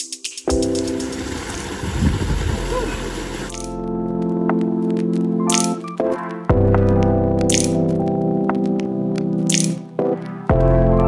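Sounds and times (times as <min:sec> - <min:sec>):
music of sustained tones: 0:00.5 - 0:07.4
waterfall splashing: 0:00.7 - 0:03.6.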